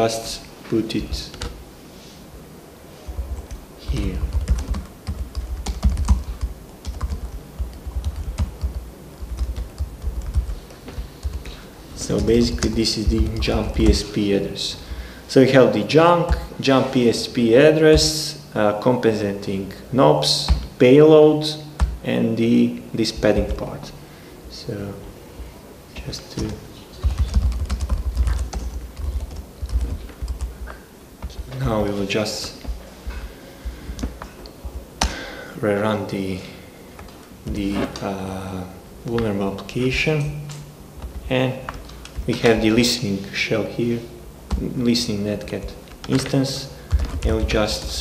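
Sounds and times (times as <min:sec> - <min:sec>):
typing on computer keyboard: 0:03.4 - 0:11.6, 0:26.4 - 0:30.5.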